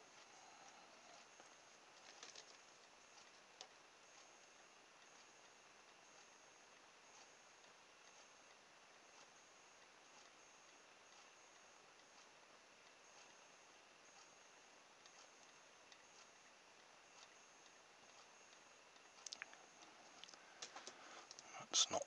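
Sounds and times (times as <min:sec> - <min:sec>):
faint room hiss: 0:00.0 - 0:22.0.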